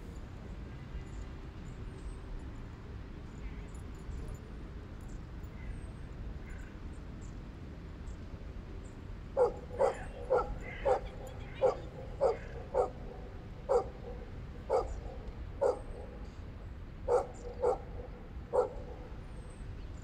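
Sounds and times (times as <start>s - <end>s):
dog barking: 9.4s - 16.2s, 17.1s - 19.2s.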